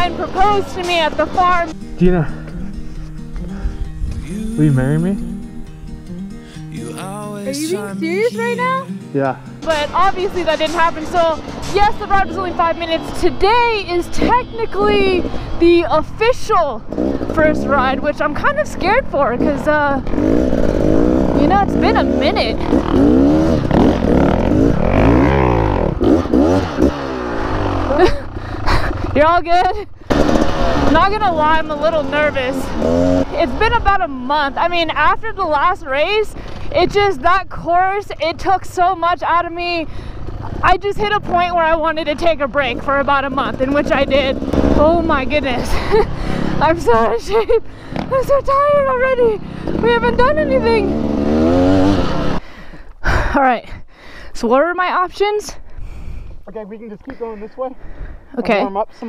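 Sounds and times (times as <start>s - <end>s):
dirt bike engines revving: 0.0s - 3.3s, 6.4s - 52.5s.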